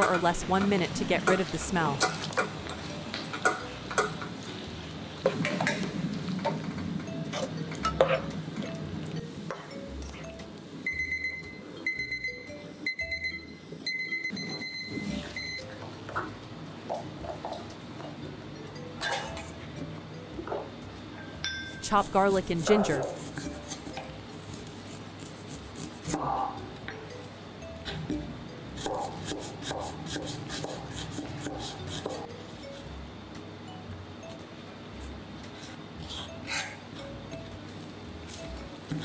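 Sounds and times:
kitchen timer beeping: 0:09.8 - 0:15.7.

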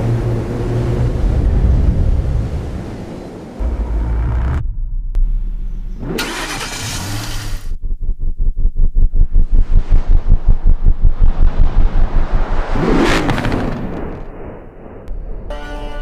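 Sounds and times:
car engine cranking and starting: 0:06.0 - 0:07.8.

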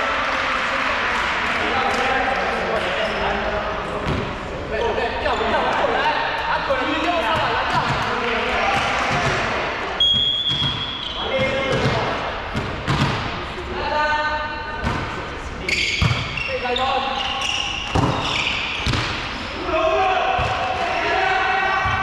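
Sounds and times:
players' voices in a gym: 0:00.0 - 0:22.0
referee's whistle: 0:10.0 - 0:11.3, 0:15.7 - 0:18.8.

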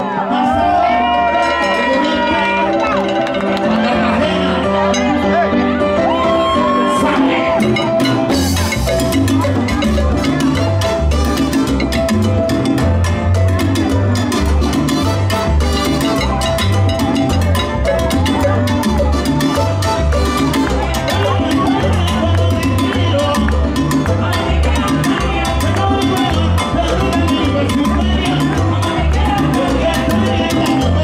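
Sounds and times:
live salsa band playing: 0:00.0 - 0:31.0
congas and timbales rhythm: 0:00.1 - 0:31.0
trumpet: 0:00.8 - 0:23.4.

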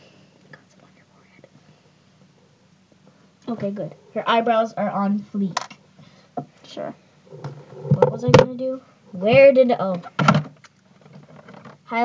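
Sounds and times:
faint whispering: 0:00.0 - 0:02.0.

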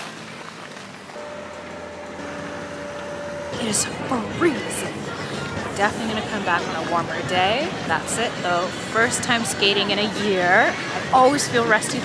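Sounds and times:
held tone: 0:01.2 - 0:06.7
crowd noise: 0:01.2 - 0:12.0
voices: 0:03.5 - 0:12.0.

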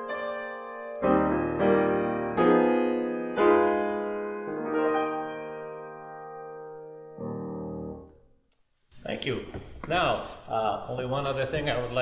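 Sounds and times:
slow jazz piano chords: 0:00.0 - 0:08.2.

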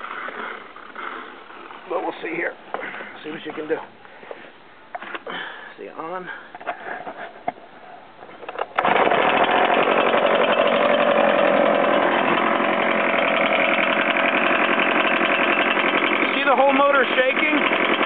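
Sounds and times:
leaf blower engine running: 0:08.8 - 0:18.0.

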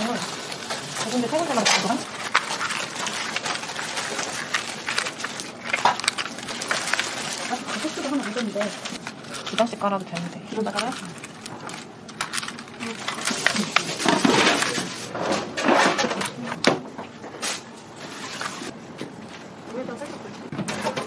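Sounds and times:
paper rustling: 0:00.0 - 0:16.6, 0:17.4 - 0:18.8.

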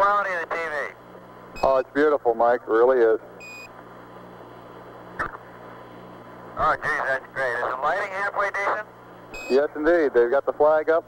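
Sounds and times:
radio hiss and hum: 0:00.0 - 0:11.0
short radio beep: 0:09.4 - 0:09.6.

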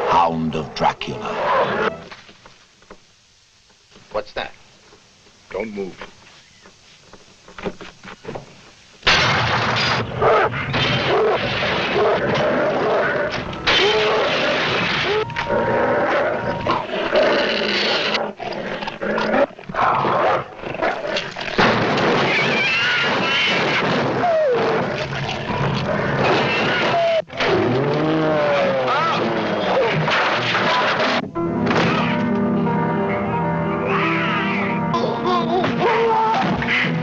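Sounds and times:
dogs snarling and growling: 0:10.1 - 0:21.7, 0:22.8 - 0:31.2
animal's high wavering cry: 0:33.8 - 0:34.8.

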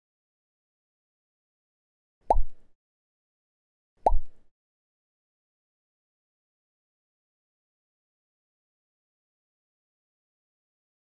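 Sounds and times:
electronic pop blip: 0:02.3 - 0:02.6, 0:04.1 - 0:04.4.

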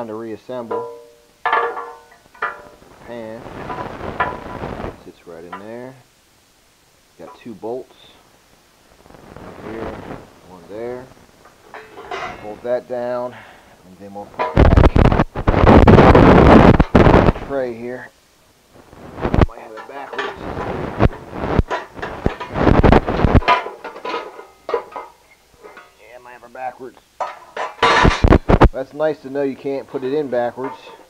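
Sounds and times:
metal tube clinking on metal pan: 0:00.7 - 0:02.8
microphone handling noise: 0:02.6 - 0:05.0, 0:08.9 - 0:12.6, 0:14.2 - 0:17.6, 0:18.8 - 0:19.6, 0:20.3 - 0:23.5, 0:27.8 - 0:28.8.

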